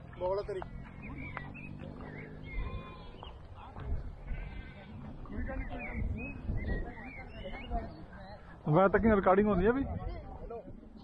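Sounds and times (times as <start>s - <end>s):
high chirping calls: 0.4s - 3.7s, 5.3s - 8.7s
wind on microphone: 2.4s - 8.1s, 9.0s - 11.0s.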